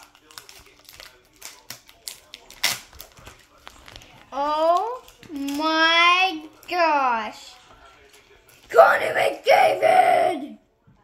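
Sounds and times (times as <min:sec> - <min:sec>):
foil pack tearing and crinkling: 0:00.0 - 0:05.6.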